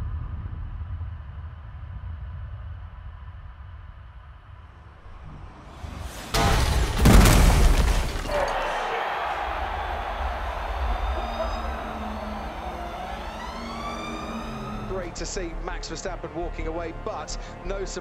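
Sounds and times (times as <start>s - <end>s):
heavy crash impact: 5.6s - 11.0s
noisy rumble: 9.0s - 17.3s
gliding tones: 9.4s - 16.3s.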